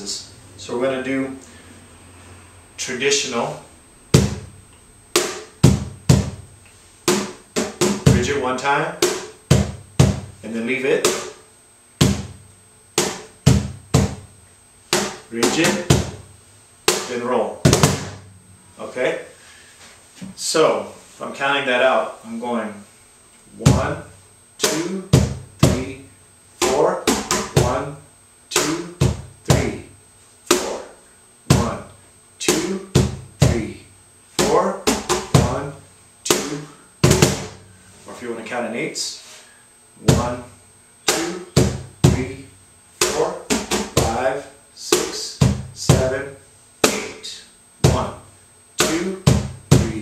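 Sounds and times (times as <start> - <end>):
cajon struck by hand: 4.1 - 6.4, 7.1 - 8.4, 9.0 - 10.3, 11.0 - 11.4, 12.0 - 12.4, 13.0 - 14.3, 14.9 - 16.2, 16.9 - 18.2, 24.6 - 25.8, 26.6 - 27.8, 28.5 - 29.7, 30.5 - 30.8, 34.4 - 35.6, 36.3 - 37.6, 41.1 - 42.2, 43.0 - 44.2, 44.9 - 46.1, 48.8 - 50.0.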